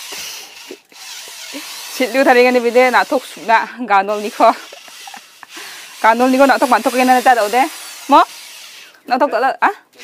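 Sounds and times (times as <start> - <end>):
electric drill whirring: 0.0 - 9.0.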